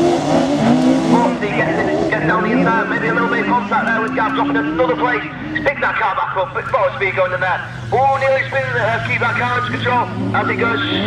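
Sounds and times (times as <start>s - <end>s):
racing car engines: 0.0s - 11.0s.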